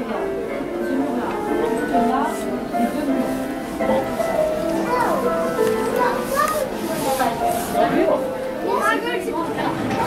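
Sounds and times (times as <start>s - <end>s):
voices of shoppers: 0.0s - 10.0s.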